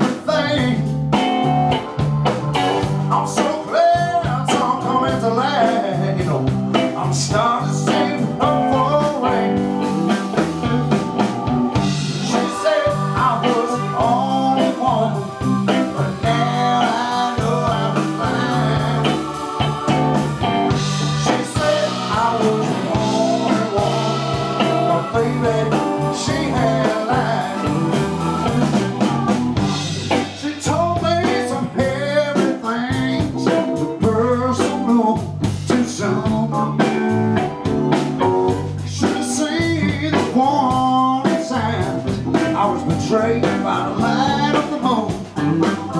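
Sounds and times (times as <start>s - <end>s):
drum kit: 0.0s - 45.9s
electric bass: 0.0s - 45.9s
electric guitar: 0.0s - 45.9s
keyboard: 0.0s - 45.9s.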